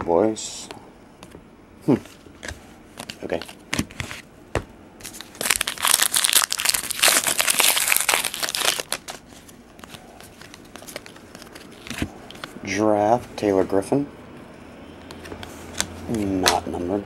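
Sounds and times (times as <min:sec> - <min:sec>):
plastic wrapper crinkling and tearing: 0:05.0 - 0:12.5.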